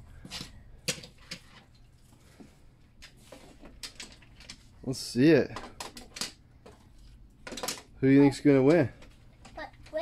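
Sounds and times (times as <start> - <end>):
toy cars clicking on plastic track: 7.4 - 7.9.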